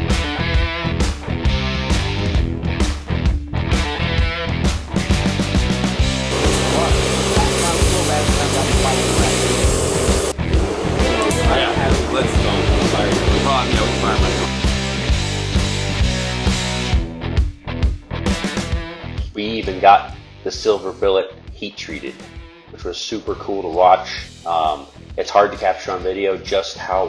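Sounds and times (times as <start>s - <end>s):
rock music with guitar: 0.0s - 20.4s, 22.1s - 22.8s
voices under music: 6.3s - 16.9s, 19.3s - 27.0s.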